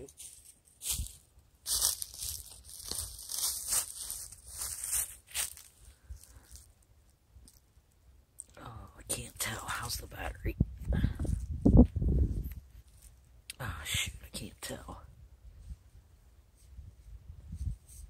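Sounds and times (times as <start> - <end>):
rustling and crackling of equipment: 0.0 - 6.8, 12.4 - 13.2.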